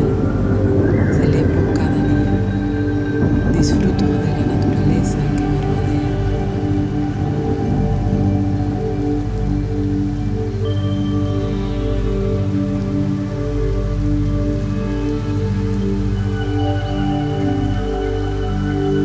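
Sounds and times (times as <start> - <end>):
ambient synth music: 0.0 - 19.0
soft rain-like hiss: 0.0 - 19.0.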